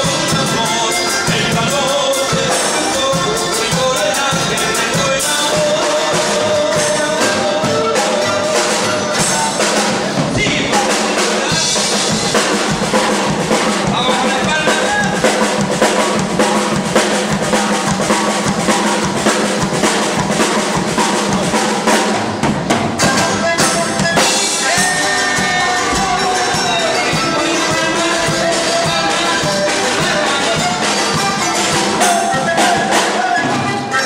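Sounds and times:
drum kit playing: 0.0 - 34.0.

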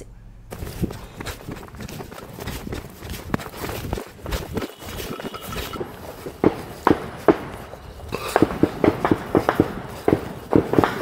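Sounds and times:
footsteps on dirt track: 0.5 - 11.0.

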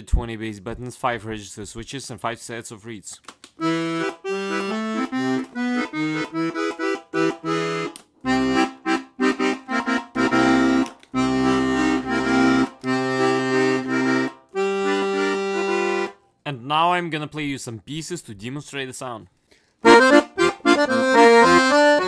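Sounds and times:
accordion bass and chords: 3.6 - 16.4, 19.8 - 22.0.

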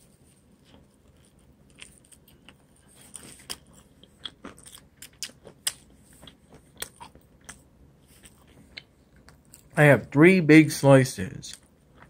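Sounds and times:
person chewing food: 0.0 - 9.8, 11.5 - 12.0.

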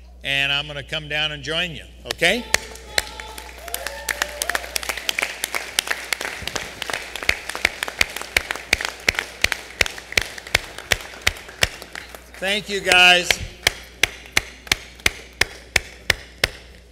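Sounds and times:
crowd applauding: 2.5 - 13.3
loud close hand claps: 2.5 - 16.8.

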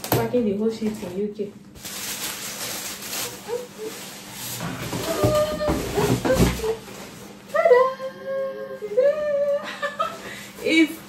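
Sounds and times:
packaging rustling and crinkling: 1.8 - 7.3.

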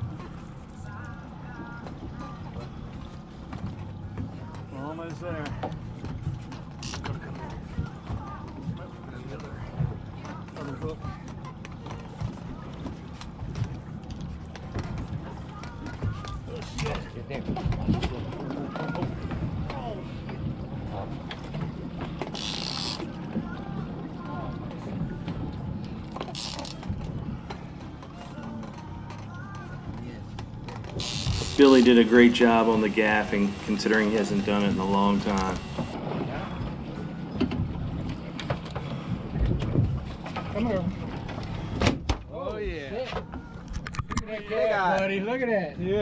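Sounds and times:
faint voices: 0.0 - 37.4
water splashing: 0.0 - 45.1
outboard motors idling: 0.0 - 46.0.

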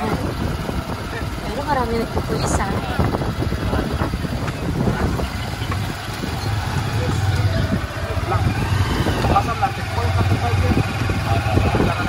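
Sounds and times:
people talking: 0.0 - 0.4, 1.0 - 12.0
small motorcycle engine running: 0.0 - 12.0.

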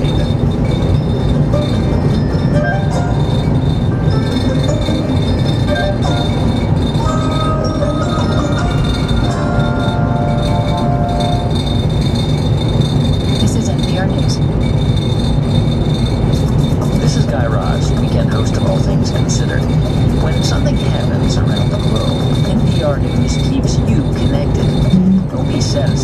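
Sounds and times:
radio music with mallet percussion: 0.0 - 14.4, 16.2 - 26.0
car road and engine noise: 0.0 - 26.0.

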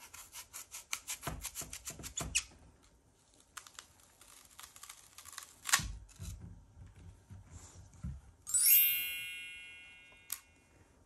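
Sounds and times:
knife cutting crisp apple: 0.0 - 2.5.

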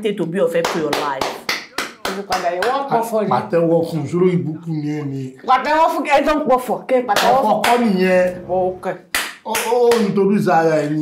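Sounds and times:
person speaking: 0.0 - 11.0
hand claps: 0.6 - 2.9, 7.1 - 7.9, 9.1 - 10.2.

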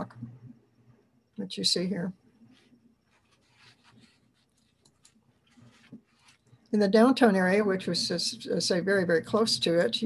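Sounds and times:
faint scratchy rustles: 2.4 - 6.6.

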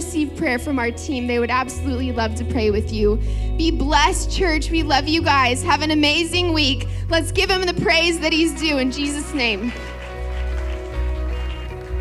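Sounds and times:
worship band playing: 0.0 - 12.0.

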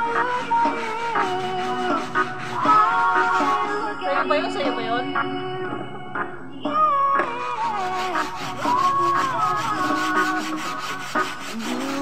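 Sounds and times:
song playing in background: 0.0 - 12.0
wet carpet scrubbed by hand: 7.8 - 12.0.

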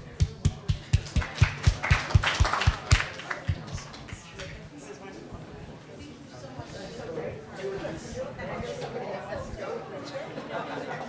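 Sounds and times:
close hands clapping: 0.0 - 4.6
audience applause: 0.9 - 4.5.

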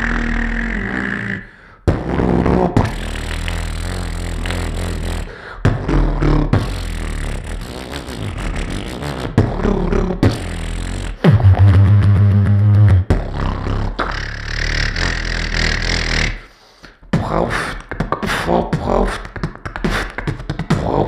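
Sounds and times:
beatboxing mouth percussion: 0.0 - 21.0
low hummed bass tone: 11.2 - 14.1.

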